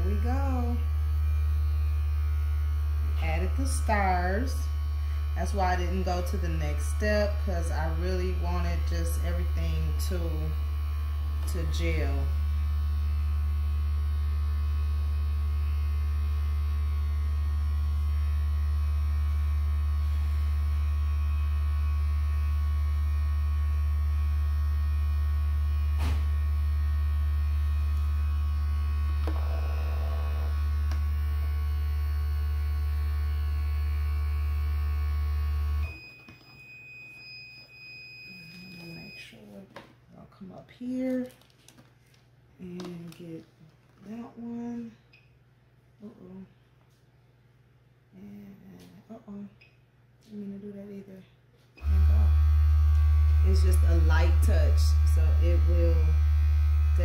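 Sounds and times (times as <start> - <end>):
heat press humming: 0.0 - 36.4, 51.8 - 57.0
high steady beep: 35.9 - 39.4.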